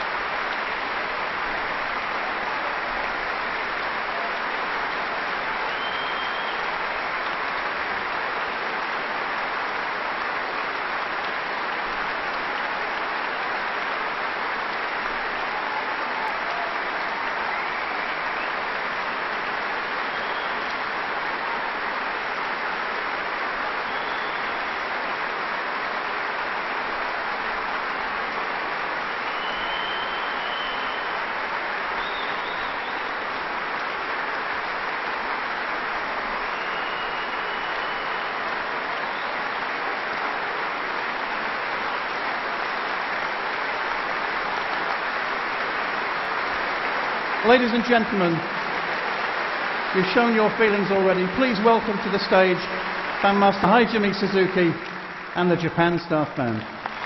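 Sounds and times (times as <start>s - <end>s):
large audience applauding: 0.0s - 57.0s.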